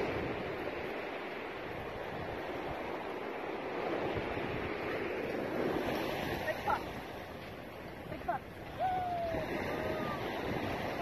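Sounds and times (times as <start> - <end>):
small waves washing on sand: 0.0 - 11.0
wind on microphone: 0.0 - 11.0.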